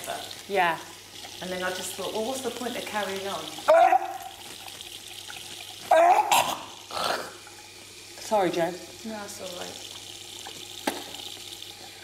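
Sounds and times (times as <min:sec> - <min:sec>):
tap running into metal sink: 0:08.9 - 0:11.6.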